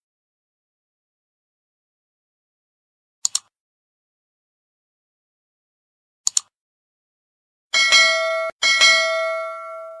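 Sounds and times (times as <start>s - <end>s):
notification bell ringing: 7.8s - 10.0s.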